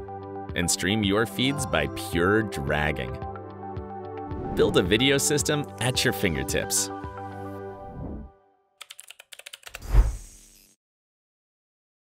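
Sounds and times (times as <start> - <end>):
keyboard keystroke clicks: 8.8 - 9.9.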